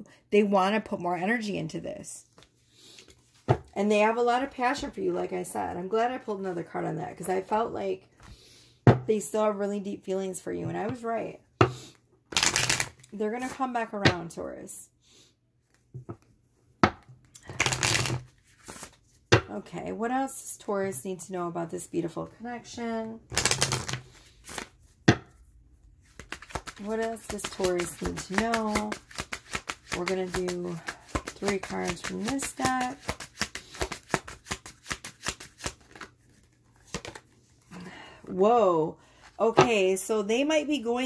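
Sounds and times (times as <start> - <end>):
cards rustling while shuffled: 12.3 - 13.0, 17.4 - 19.2, 23.3 - 24.8, 26.0 - 37.6
card deck tapping: 26.2 - 35.8.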